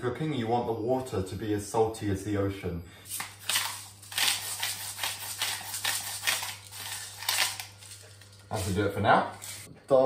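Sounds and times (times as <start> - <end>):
low steady hum: 0.0 - 10.0
salt grinder rasping: 4.1 - 7.7.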